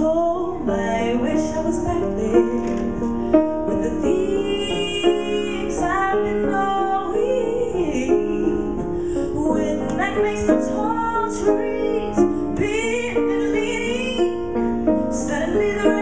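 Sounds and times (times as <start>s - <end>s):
piano accompaniment: 0.0s - 16.0s
woman singing: 0.0s - 16.0s.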